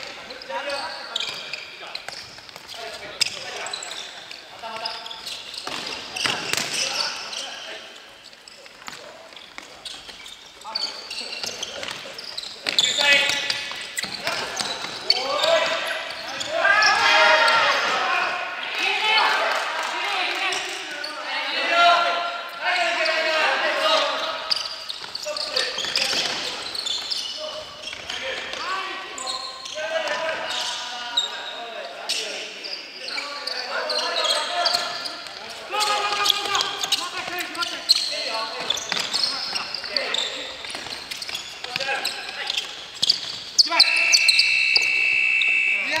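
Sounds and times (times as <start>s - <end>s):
players shouting: 14.1s - 24.4s
steady high tone: 44.0s - 46.0s.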